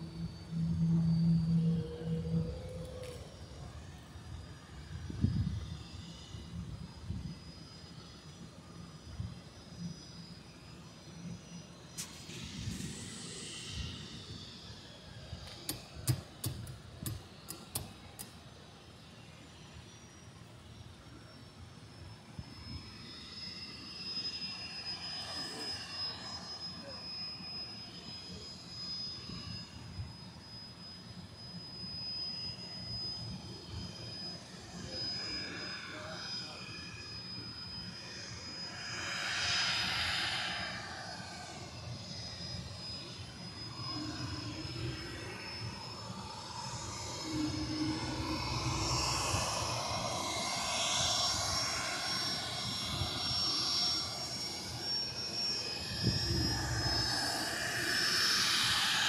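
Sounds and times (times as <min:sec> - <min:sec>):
jet engines whining: 0:00.0 - 0:59.0.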